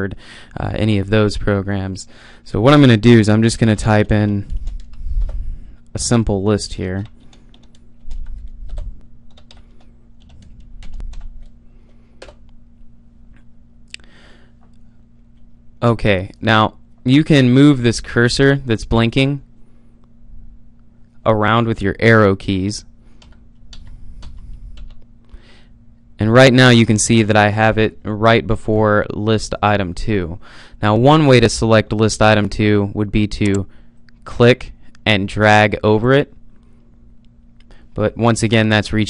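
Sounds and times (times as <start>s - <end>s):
faint steady hum: 0.0s - 39.0s
computer keyboard typing: 4.0s - 5.4s, 7.0s - 12.4s, 23.2s - 25.0s.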